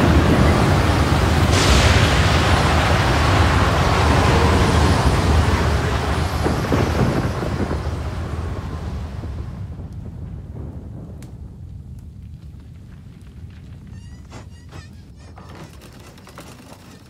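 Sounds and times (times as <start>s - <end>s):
loud deep rumble with hiss: 0.0s - 11.9s.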